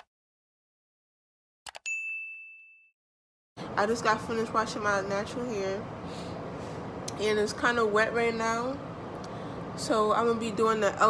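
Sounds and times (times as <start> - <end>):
notification bell ding: 1.8 - 2.9.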